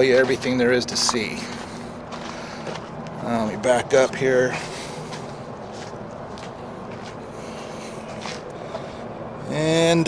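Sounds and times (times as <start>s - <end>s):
footstep scuffs on asphalt: 0.0s - 8.9s
outdoor background hum: 0.0s - 10.0s.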